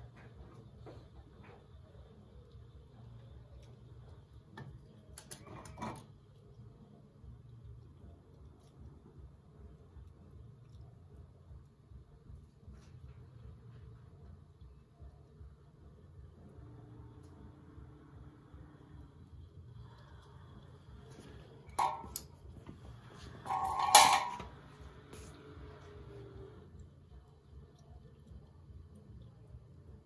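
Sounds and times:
low steady hum: 0.0s - 30.0s
metal box clanking on floor: 23.5s - 24.5s.

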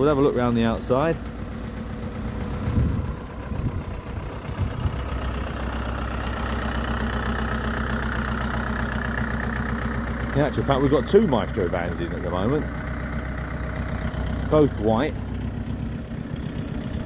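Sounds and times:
engine idling: 0.0s - 17.0s.

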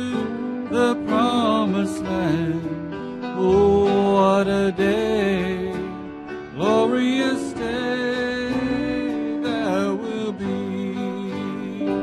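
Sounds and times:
instrumental accompaniment: 0.0s - 12.0s
man singing slow song: 0.0s - 12.0s.

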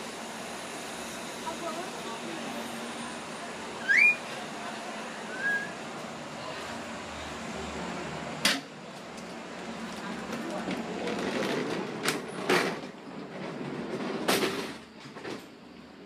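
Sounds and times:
train door clanking: 10.4s - 15.6s.

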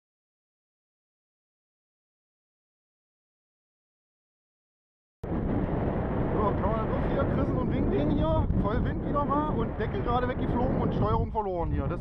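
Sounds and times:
wind noise on microphone: 5.2s - 12.0s.

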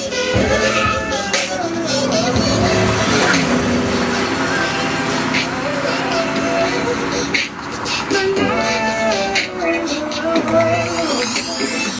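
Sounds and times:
drum beat: 0.0s - 4.4s
pop song with singing: 0.0s - 11.9s.

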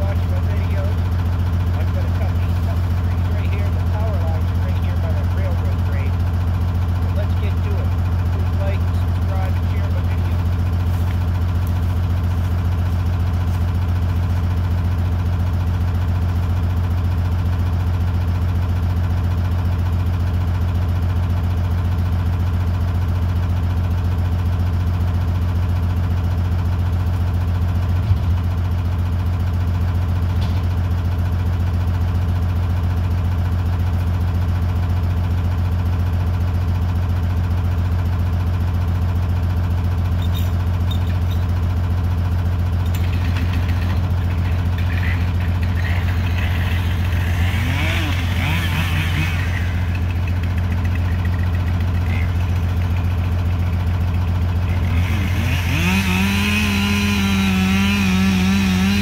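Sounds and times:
diesel engine idling: 0.0s - 59.0s.

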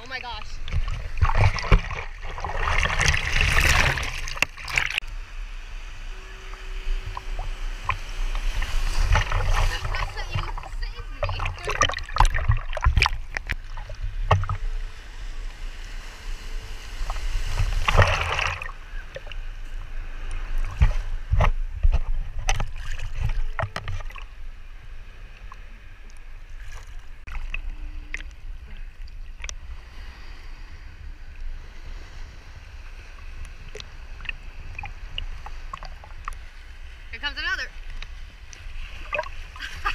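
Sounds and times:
sea water sloshing and splashing: 0.0s - 5.1s, 6.1s - 39.9s
low rumble of water on housing: 0.0s - 30.4s.

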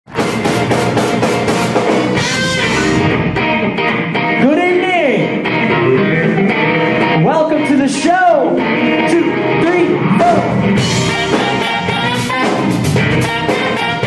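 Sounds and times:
funk band playing live: 0.1s - 14.0s.

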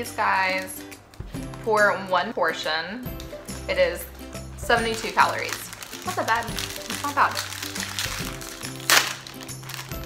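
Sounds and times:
background music with held notes: 0.0s - 10.0s
plastic snack wrapper tearing: 4.8s - 10.0s.

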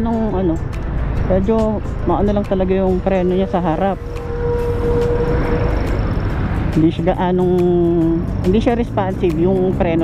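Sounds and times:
road rumble: 0.0s - 10.0s
wind: 0.0s - 10.0s
steady whine: 0.7s - 7.2s.

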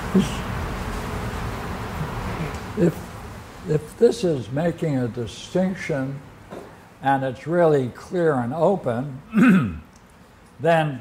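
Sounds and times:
low buzzing hum: 0.0s - 7.2s.

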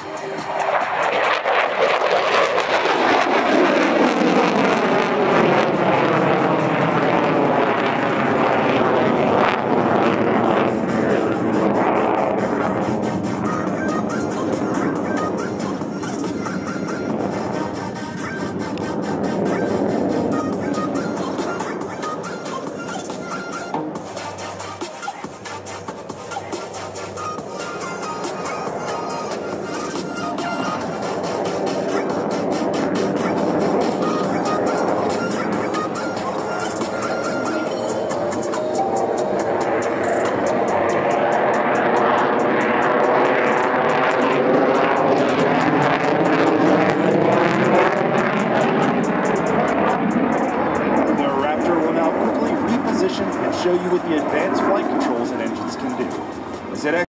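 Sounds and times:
background music: 0.0s - 3.6s, 4.4s - 57.0s
jet engines flying past: 0.0s - 57.0s.

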